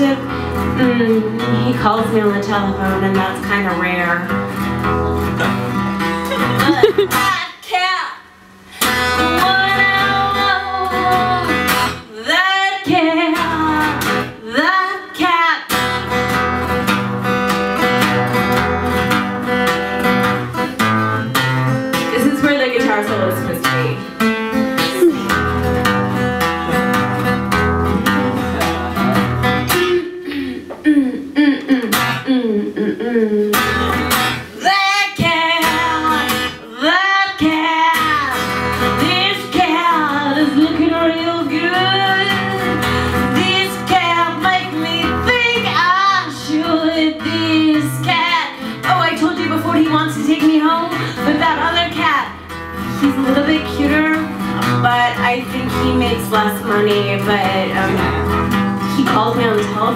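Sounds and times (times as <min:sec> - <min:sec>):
woman singing wordless vocal: 0:00.0 - 0:04.2, 0:08.8 - 0:15.7, 0:29.7 - 0:33.8, 0:34.5 - 0:59.9
strummed acoustic guitar: 0:00.0 - 0:07.9, 0:08.6 - 0:59.9.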